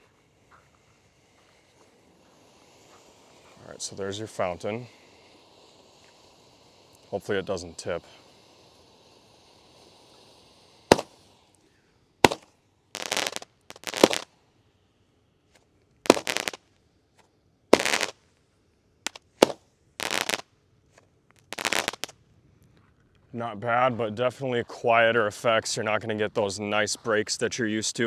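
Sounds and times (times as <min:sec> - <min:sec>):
firework pops and bursts: 0:00.0 - 0:14.4, 0:15.5 - 0:18.4, 0:19.0 - 0:22.2
firework fountain hiss: 0:00.0 - 0:22.4, 0:23.4 - 0:28.0.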